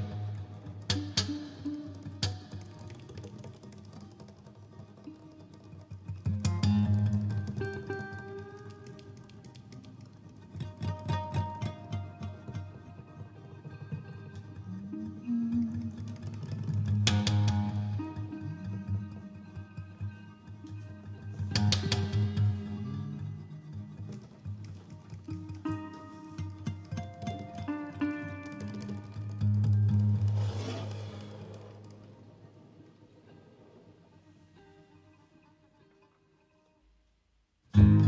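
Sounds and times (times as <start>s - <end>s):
acoustic and resonator guitars playing: 0.0s - 36.8s, 37.7s - 38.0s.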